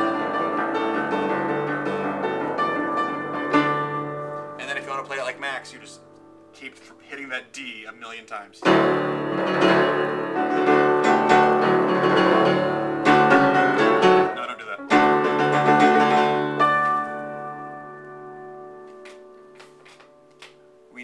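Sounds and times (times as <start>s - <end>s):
piano chords: 0.0s - 7.4s, 8.6s - 21.0s.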